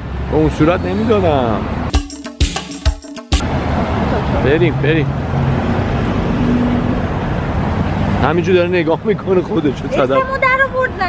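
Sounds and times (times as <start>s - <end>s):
cars passing: 0.0s - 2.0s, 3.3s - 11.0s.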